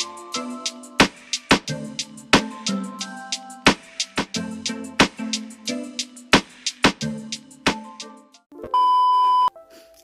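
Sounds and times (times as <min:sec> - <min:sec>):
background music: 0:00.0 - 0:08.8, 0:09.5 - 0:10.0
electronic beep: 0:08.7 - 0:09.5.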